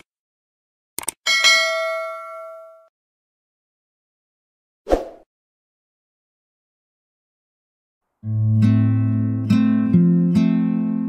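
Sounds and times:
notification bell ding: 1.3s - 2.9s.

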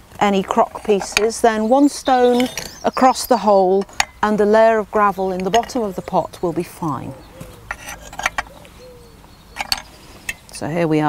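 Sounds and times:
pottery shards clinking: 0.4s - 4.4s, 6.8s - 8.5s, 9.5s - 10.5s.

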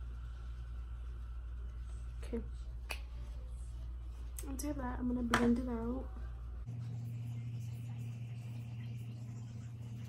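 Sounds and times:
steady low hum: 0.0s - 10.0s
makeup sponge dabbing on skin: 6.7s - 10.0s.

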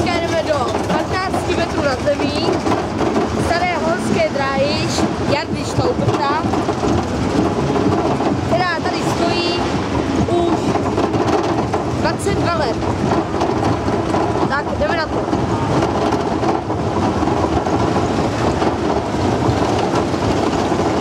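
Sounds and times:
roller coaster cars on track: 0.0s - 21.0s.

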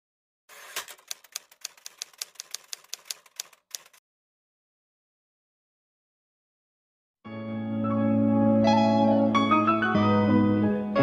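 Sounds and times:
keyboard typing clicks: 0.7s - 4.0s.

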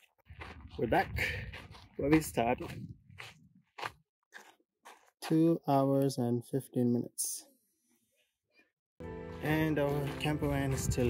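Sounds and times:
footsteps on gravel: 0.0s - 5.6s, 9.0s - 11.0s.

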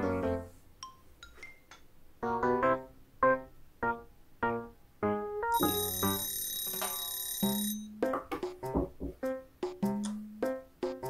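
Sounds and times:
piano music: 2.2s - 8.2s
bright alarm ringing: 5.6s - 7.9s.

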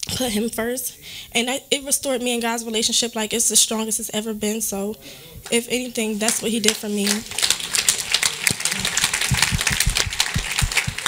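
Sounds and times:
people clapping: 6.2s - 11.0s.

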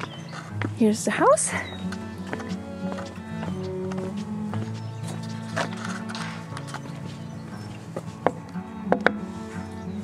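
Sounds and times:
background music: 0.0s - 10.0s.

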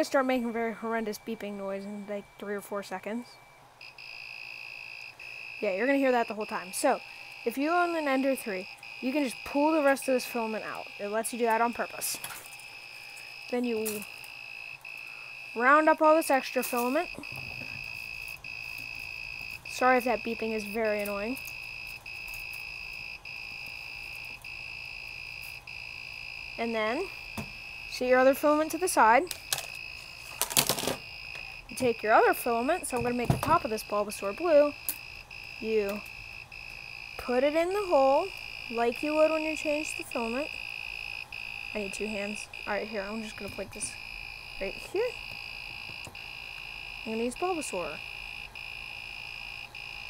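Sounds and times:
printer buzzer beeping: 0.0s - 50.0s.

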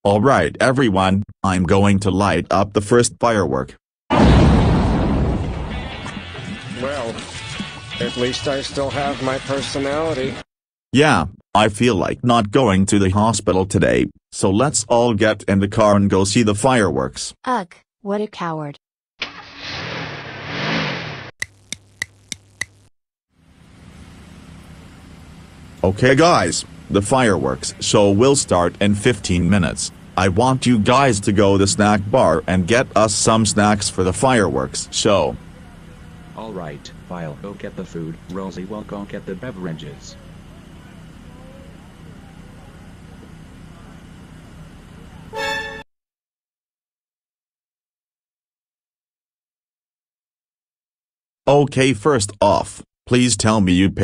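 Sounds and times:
sharp clicks: 21.4s - 22.9s
low hum: 23.4s - 45.8s
car engine revving: 24.0s - 40.1s
short horn-like toot: 45.3s - 45.9s.

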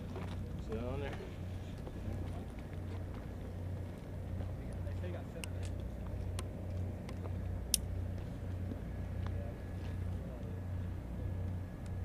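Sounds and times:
engine hum throbbing: 0.0s - 12.0s.

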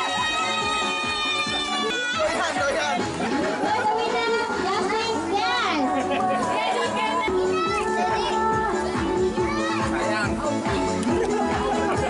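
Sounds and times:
adults talking over one another: 0.0s - 12.0s
music playing: 0.0s - 12.0s.

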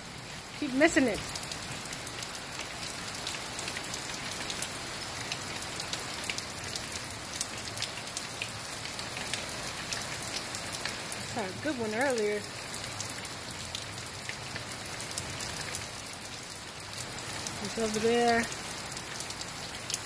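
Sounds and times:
hard rain falling: 0.0s - 20.0s.

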